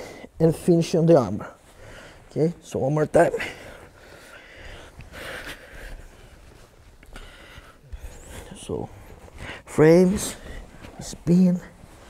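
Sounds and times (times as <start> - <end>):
person breathing: 0.0 - 0.4, 1.5 - 2.3, 3.4 - 9.7
fabric rustling on mat: 0.4 - 12.0.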